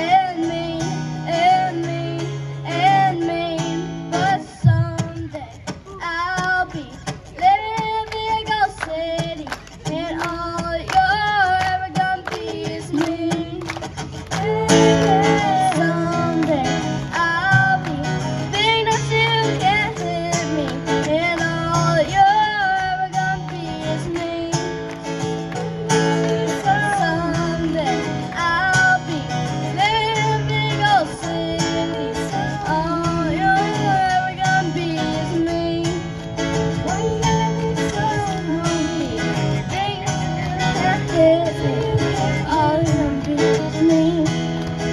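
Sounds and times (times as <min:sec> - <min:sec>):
girl singing through speakers: 0:00.0 - 0:44.9
strummed acoustic guitar: 0:00.0 - 0:44.9.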